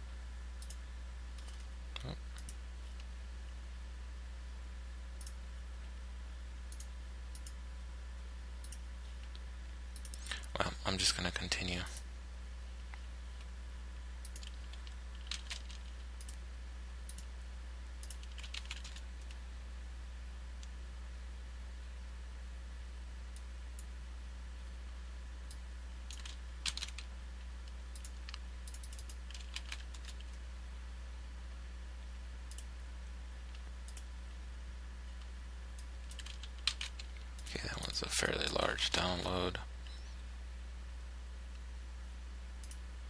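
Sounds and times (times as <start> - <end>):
low electrical hum: 0.0 - 43.0
mouse clicks: 0.6 - 0.8, 6.7 - 7.6, 8.6 - 10.5, 32.5 - 32.9, 33.5 - 34.1, 42.6 - 42.8
computer keyboard keystrokes: 14.2 - 16.4, 18.0 - 19.4, 26.1 - 30.4, 36.0 - 37.2.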